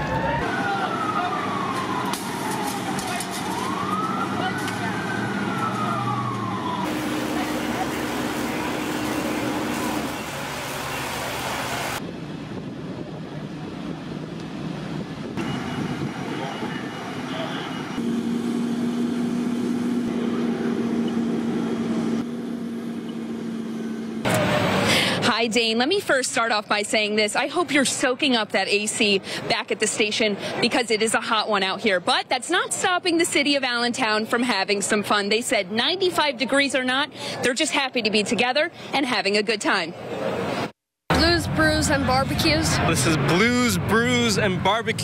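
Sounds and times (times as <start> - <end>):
fire engine siren wailing: 0.0 - 12.0, 15.4 - 25.0
fire scene noise: 0.0 - 26.6, 40.0 - 45.0.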